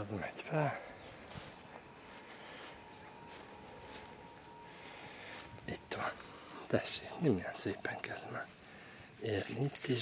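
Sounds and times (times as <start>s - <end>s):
faint background noise: 0.0s - 10.0s
faint steady thin tone: 0.0s - 10.0s.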